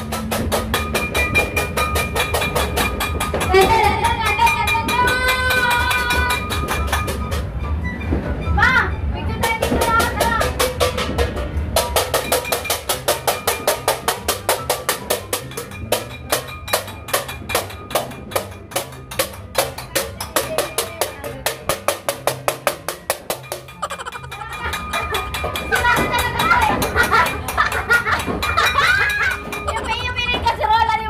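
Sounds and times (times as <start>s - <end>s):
metal pots banging: 9.5s - 30.6s
laughter: 23.8s - 25.2s, 26.7s - 30.1s.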